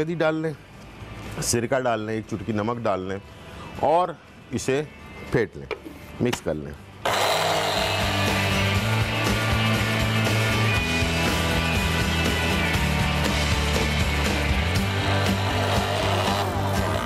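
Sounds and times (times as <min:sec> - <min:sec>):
background music: 0:00.0 - 0:17.0
blender running: 0:07.0 - 0:09.1, 0:14.8 - 0:17.0.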